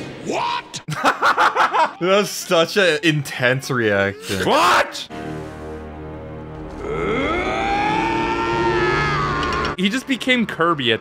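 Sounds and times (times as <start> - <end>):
siren wailing: 6.8 - 9.8.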